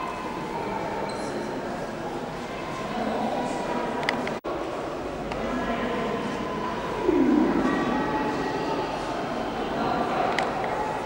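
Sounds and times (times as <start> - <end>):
murmur of echoing voices: 0.0 - 11.0
low sound sliding down in pitch: 7.0 - 8.3.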